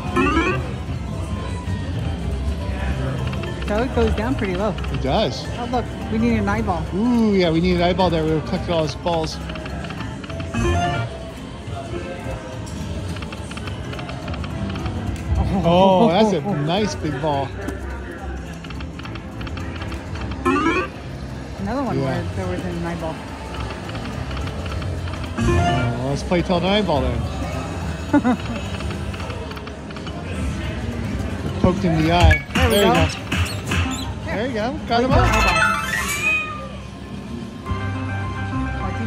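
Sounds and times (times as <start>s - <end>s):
slot machine reels spinning: 0.0s - 1.2s, 2.9s - 11.4s, 18.4s - 31.0s, 31.8s - 37.2s
slot machine game music: 0.0s - 11.7s, 18.8s - 29.4s, 31.7s - 36.9s, 37.5s - 39.0s
casino background noise: 0.0s - 39.0s
slot reels spinning: 35.0s - 36.8s.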